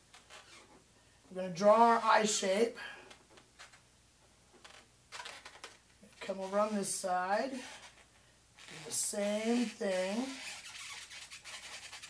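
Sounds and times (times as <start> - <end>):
marker scratching on balloon: 7.5 - 12.0.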